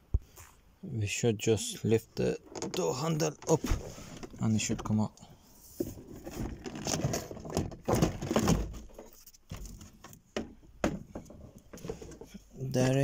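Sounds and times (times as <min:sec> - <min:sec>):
plastic panel scraping and rubbing: 0:02.2 - 0:13.0.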